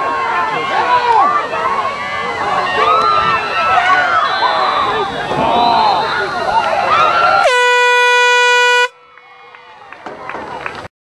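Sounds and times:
crowd voices: 0:00.0 - 0:10.9
horn blaring: 0:07.4 - 0:09.1.

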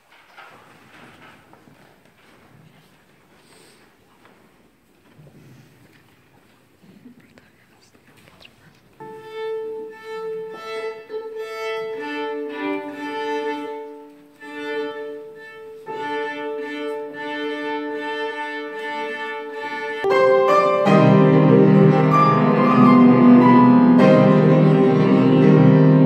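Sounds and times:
violin being tuned: 0:09.0 - 0:26.0
loud piano chord: 0:20.1 - 0:26.0.

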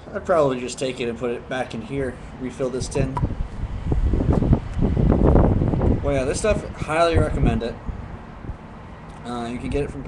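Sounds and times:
air buffeting microphone: 0:00.0 - 0:10.0.

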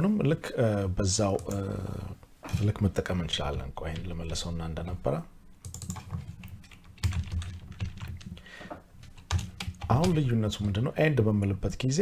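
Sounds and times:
computer keyboard typing: 0:01.3 - 0:01.8, 0:05.6 - 0:08.4, 0:09.0 - 0:10.8.

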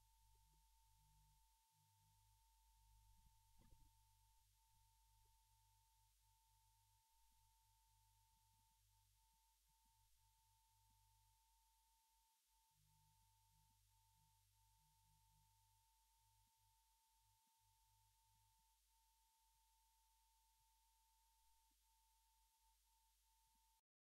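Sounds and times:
faint steady tone: 0:00.0 - 0:23.8.

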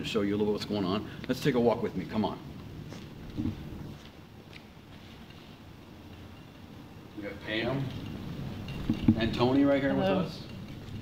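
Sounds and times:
faint footsteps: 0:02.2 - 0:06.7.

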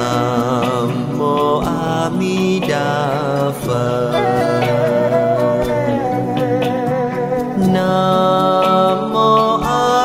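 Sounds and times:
devotional chant singing: 0:00.0 - 0:10.0
instrumental accompaniment: 0:00.0 - 0:10.0.

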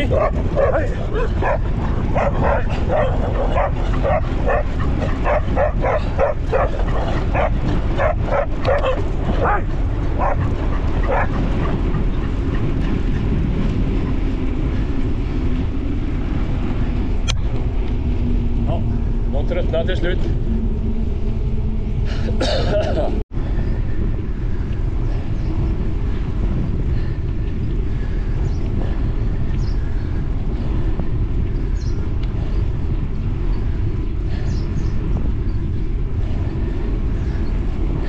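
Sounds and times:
dogs barking: 0:00.0 - 0:12.8
low wind rumble: 0:00.0 - 0:38.0.

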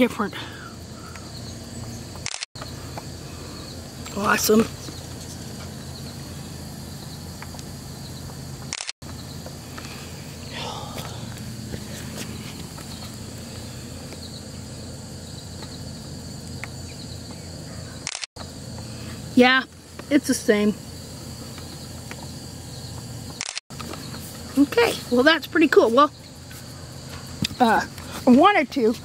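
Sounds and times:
low hum: 0:00.0 - 0:28.3.

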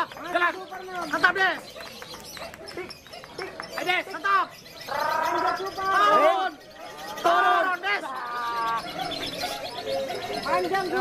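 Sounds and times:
lovebird chattering song: 0:00.0 - 0:11.0.

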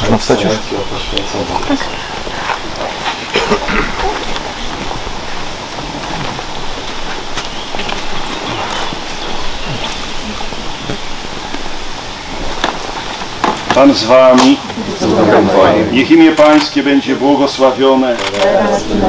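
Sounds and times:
steady outdoor hiss: 0:00.0 - 0:19.0
faint voices: 0:13.7 - 0:19.0.

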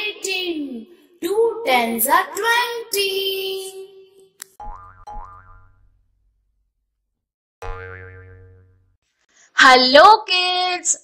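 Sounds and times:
cartoon boing sound effect: 0:04.6 - 0:05.9, 0:07.6 - 0:08.9.

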